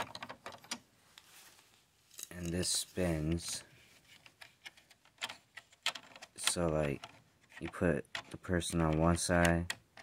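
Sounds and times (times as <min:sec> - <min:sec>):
plastic bricks clicking: 0:04.3 - 0:10.0.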